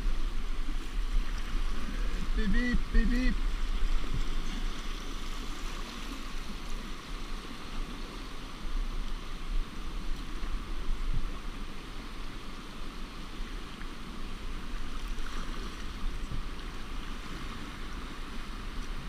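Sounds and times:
deep water rumble: 0:00.0 - 0:12.5, 0:13.4 - 0:19.0
river rapids rushing: 0:00.0 - 0:18.8.

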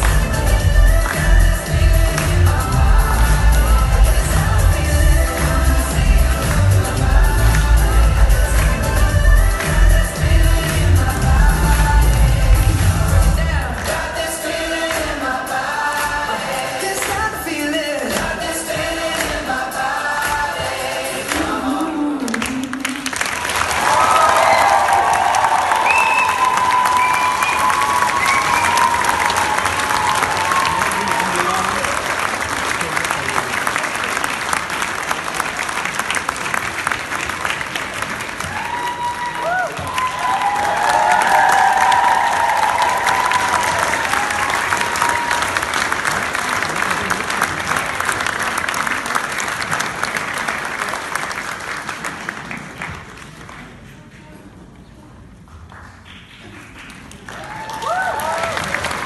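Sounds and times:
audience applauding: 0:21.2 - 0:54.1, 0:55.6 - 0:59.0.

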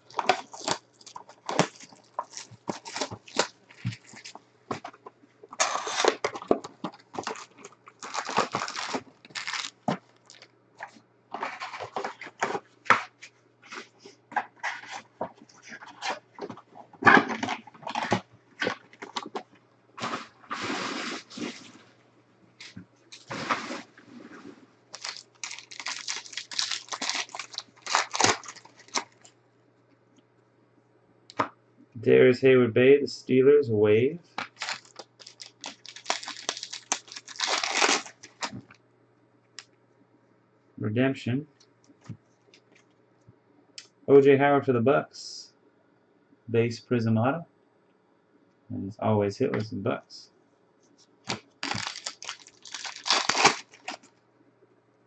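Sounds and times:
card pack wrappers crinkling: 0:00.0 - 0:04.9, 0:05.5 - 0:12.6, 0:24.9 - 0:29.3, 0:34.4 - 0:38.8, 0:51.3 - 0:54.1.

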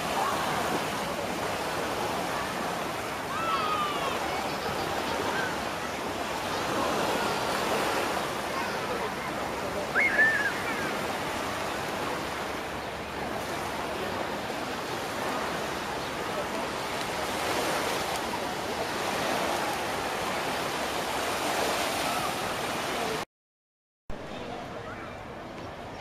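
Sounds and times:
surf washing: 0:00.0 - 0:23.2.

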